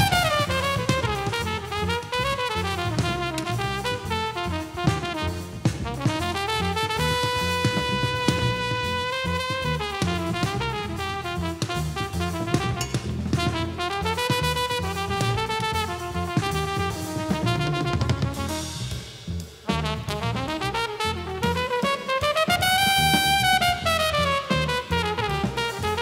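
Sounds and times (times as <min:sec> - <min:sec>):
double bass line: 0:00.0 - 0:26.0
drum kit: 0:00.0 - 0:26.0
tenor saxophone: 0:00.0 - 0:26.0
trumpet: 0:00.0 - 0:26.0.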